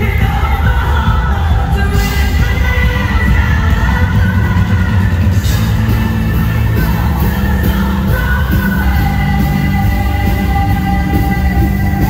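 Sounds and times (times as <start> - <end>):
loud live band music: 0.0 - 12.0.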